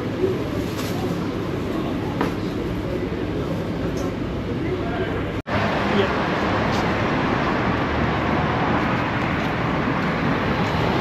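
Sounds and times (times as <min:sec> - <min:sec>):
passing cars: 0:05.5 - 0:11.0.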